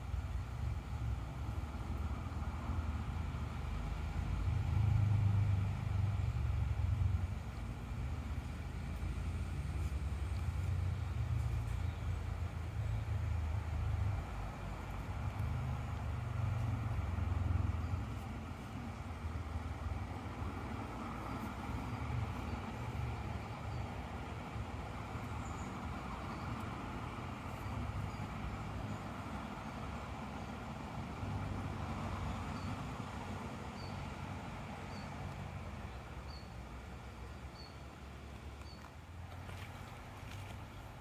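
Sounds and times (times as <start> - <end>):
shallow river running over rocks: 0.0 - 41.0.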